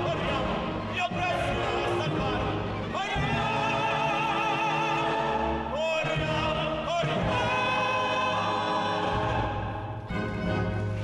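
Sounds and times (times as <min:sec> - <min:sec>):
operatic chorus singing: 0:00.0 - 0:11.0
orchestra: 0:00.0 - 0:11.0.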